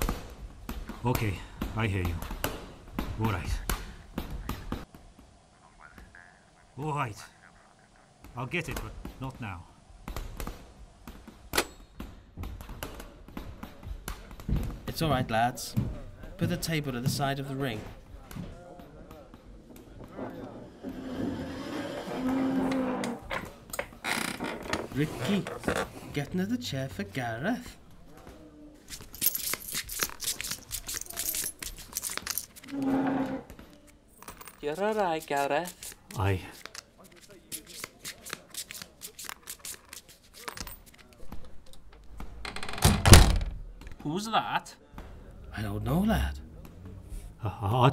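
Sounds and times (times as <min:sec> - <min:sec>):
irregular knocks and thuds: 0:12.0 - 0:17.3
poker chips clicking: 0:28.9 - 0:32.7.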